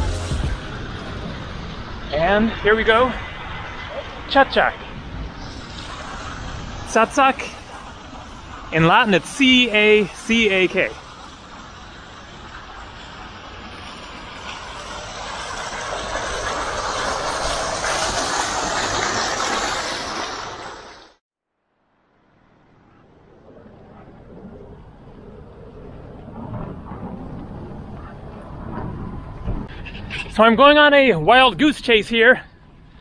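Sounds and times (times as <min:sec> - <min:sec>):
faint outdoor hiss: 0:04.3 - 0:15.7
fountain water splashing: 0:05.4 - 0:21.2.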